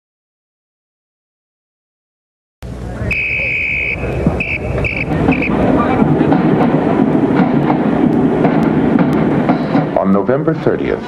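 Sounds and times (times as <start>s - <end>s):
loud noisy din: 2.7s - 10.2s
shrill whistle-like tone: 3.1s - 5.6s.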